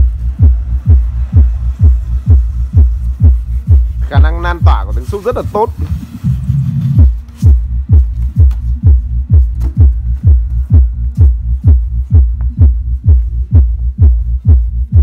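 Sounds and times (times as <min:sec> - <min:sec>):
low bass drone: 0:00.0 - 0:05.1, 0:05.9 - 0:15.0
deep punchy kick drum: 0:00.0 - 0:05.2, 0:07.0 - 0:15.0.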